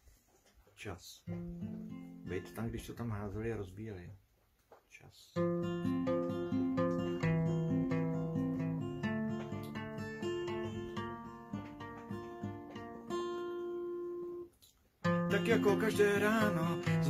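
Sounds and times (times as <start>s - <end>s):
acoustic guitar chords: 1.3s - 2.9s, 5.4s - 17.0s.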